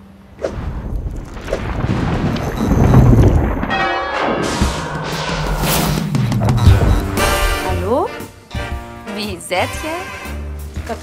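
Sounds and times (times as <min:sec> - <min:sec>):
low rumble of thunder: 0:00.7 - 0:03.8
church bell ringing: 0:03.7 - 0:04.6.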